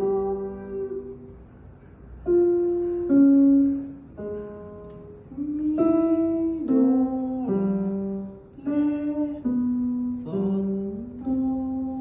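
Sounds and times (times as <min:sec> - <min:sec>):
slow melody of held notes: 0:00.0 - 0:01.4, 0:02.2 - 0:12.0.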